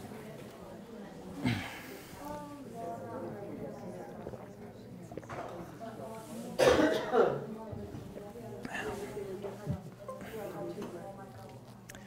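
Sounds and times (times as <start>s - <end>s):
low murmur of room sound: 0.0s - 12.0s
person coughing: 1.4s - 1.9s, 6.6s - 7.4s.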